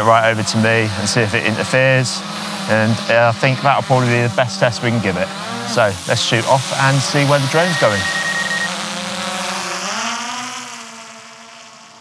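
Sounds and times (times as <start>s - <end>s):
drone propellers buzzing: 0.0s - 12.0s.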